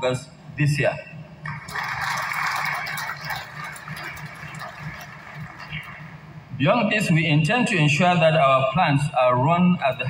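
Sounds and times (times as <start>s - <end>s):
audience applauding: 1.4s - 6.2s.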